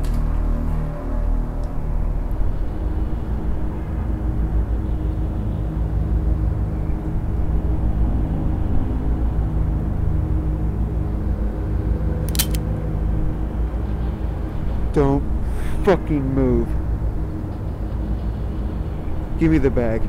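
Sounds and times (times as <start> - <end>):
steady low rumble: 0.0 - 20.0.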